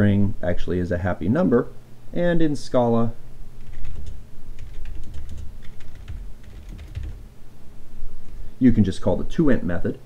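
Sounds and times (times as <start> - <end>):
computer keyboard typing: 3.6 - 7.3.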